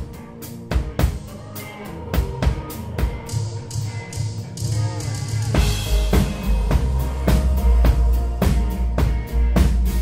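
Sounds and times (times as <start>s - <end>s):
bass line: 0.0s - 10.0s
live indie pop band music: 0.0s - 10.0s.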